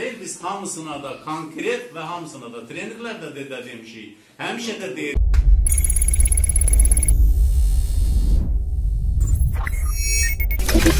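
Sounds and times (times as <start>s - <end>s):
thin high tone: 5.7s - 7.2s
deep bass rumble: 6.6s - 9.8s.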